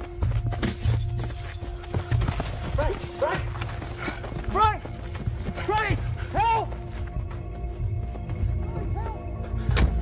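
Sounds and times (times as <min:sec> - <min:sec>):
knocks and scuffs: 0:00.0 - 0:10.0.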